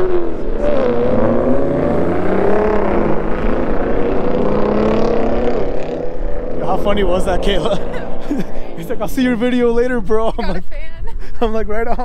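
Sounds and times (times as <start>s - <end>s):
car engine revving: 0.0s - 10.4s.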